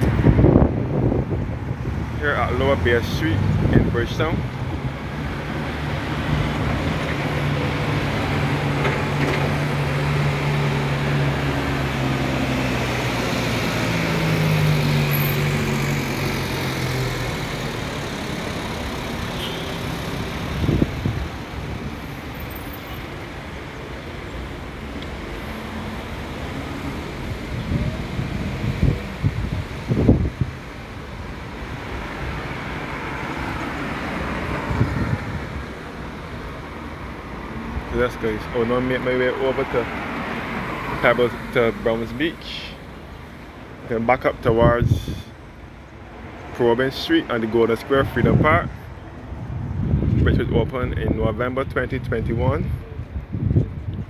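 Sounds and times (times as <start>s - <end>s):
vehicle engine humming: 0.0s - 44.5s
cars going by: 0.0s - 54.0s.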